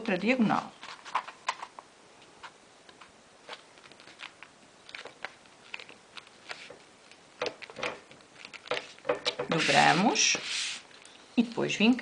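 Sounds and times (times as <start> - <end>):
paper crinkling while folded: 2.4 - 11.1.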